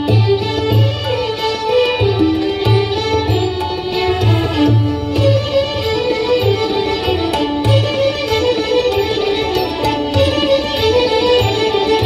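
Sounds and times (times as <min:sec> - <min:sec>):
tabla strokes: 0:00.0 - 0:12.0
violins playing melody: 0:00.0 - 0:12.0.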